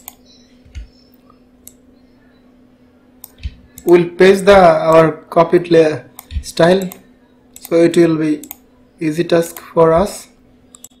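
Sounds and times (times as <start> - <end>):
low electrical hum: 0.0 - 11.0
person speaking: 3.2 - 10.4
faint computer mouse clicks: 10.7 - 11.0.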